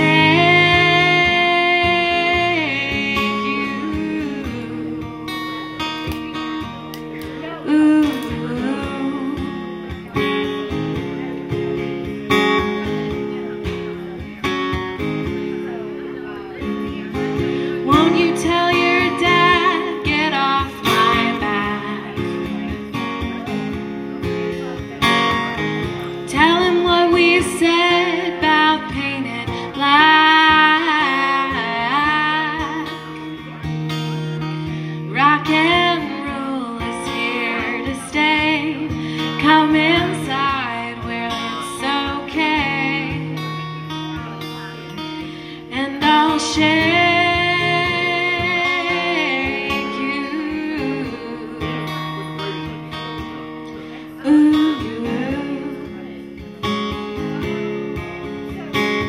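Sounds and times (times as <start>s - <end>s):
person singing: 0.0s - 5.7s, 7.3s - 10.2s, 17.4s - 22.8s, 34.9s - 43.8s, 45.6s - 53.1s, 53.8s - 56.5s
acoustic guitar: 0.0s - 59.0s.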